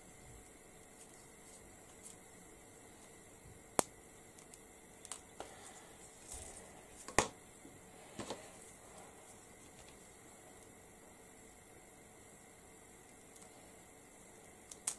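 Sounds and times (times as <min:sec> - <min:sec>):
soft handling noise: 0:00.0 - 0:03.5, 0:04.4 - 0:10.8.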